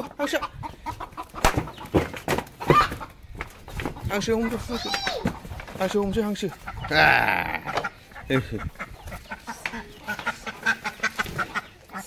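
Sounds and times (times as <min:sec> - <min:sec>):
duck quacking: 0:06.4 - 0:12.0.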